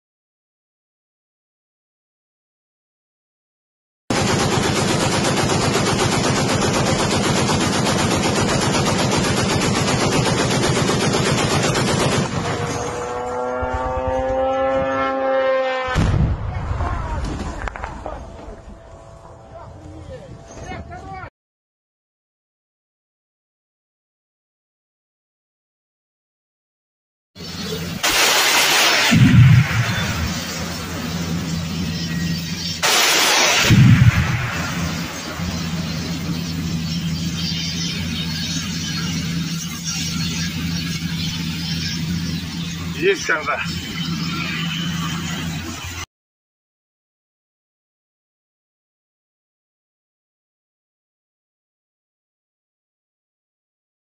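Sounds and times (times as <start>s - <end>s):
machine gun firing burst: 4.1s - 12.6s, 28.0s - 40.7s
droning engine: 4.6s - 16.1s, 17.6s - 21.3s, 29.1s - 33.1s, 33.7s - 46.0s
loud rushing blast: 15.9s - 18.4s, 28.0s - 36.8s
deep boom: 15.9s - 18.6s, 29.0s - 30.6s, 33.6s - 35.8s.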